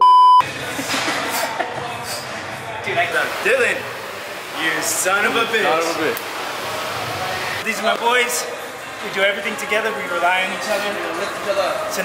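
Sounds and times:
high test-tone beep: 0.0s - 0.4s.

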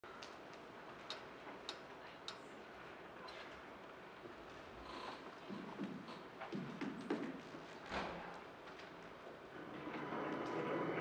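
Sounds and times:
faint hall ambience: 0.0s - 11.0s.

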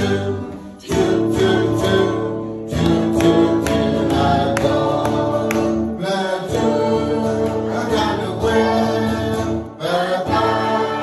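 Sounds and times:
group of adults singing: 0.0s - 11.0s
musical accompaniment with steady beat: 0.0s - 11.0s.

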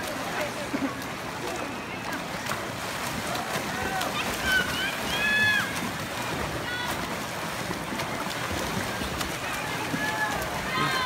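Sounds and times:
swimmers splashing: 0.0s - 11.0s
faint shout: 9.8s - 11.0s.

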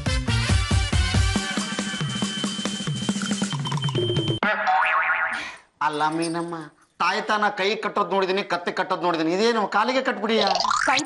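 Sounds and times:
person speaking: 5.4s - 11.0s.

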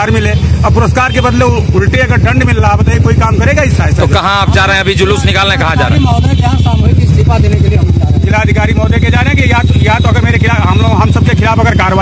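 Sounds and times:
men talking: 0.0s - 12.0s
vehicle engine running: 0.0s - 12.0s.

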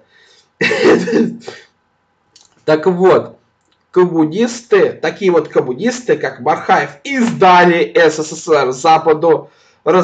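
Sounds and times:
man clearing his throat: 0.6s - 1.7s.

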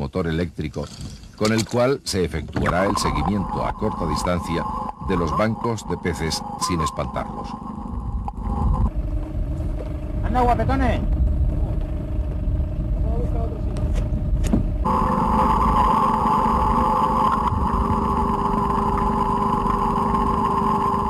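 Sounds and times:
steady hum: 0.4s - 21.0s
boat motor running: 0.9s - 21.0s.

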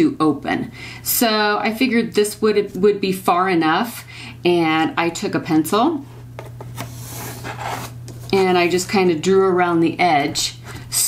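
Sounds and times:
pencil scratching on folder: 6.8s - 8.0s.

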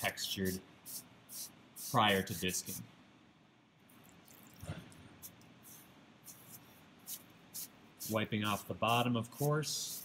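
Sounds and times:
sponge rubbing clay: 5.2s - 10.0s.

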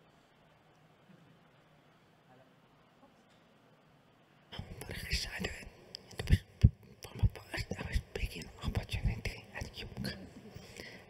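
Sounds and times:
man whispering into a microphone: 4.5s - 11.0s.

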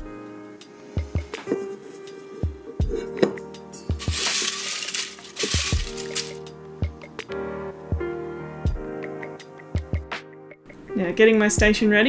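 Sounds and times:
background music: 0.0s - 12.0s
paper slips rustling: 4.0s - 6.4s.

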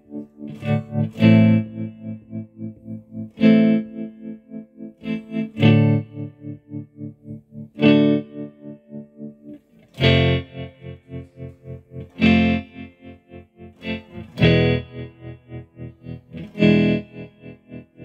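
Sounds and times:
electric guitar chords with tremolo: 0.0s - 18.0s.

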